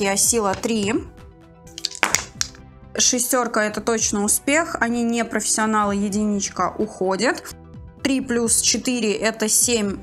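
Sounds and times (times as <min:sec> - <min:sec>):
soft background music: 0:00.0 - 0:10.0
dice rattling in wooden tray: 0:01.8 - 0:02.6.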